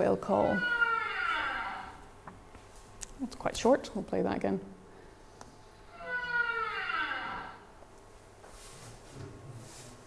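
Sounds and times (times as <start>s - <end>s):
whale call over loudspeakers: 0.4s - 2.0s, 5.9s - 7.7s.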